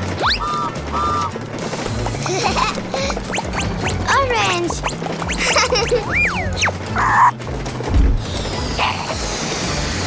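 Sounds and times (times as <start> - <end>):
crackly balloon stretching sound: 0.0 - 10.0
light background music: 0.0 - 10.0
low thump: 7.9 - 8.3.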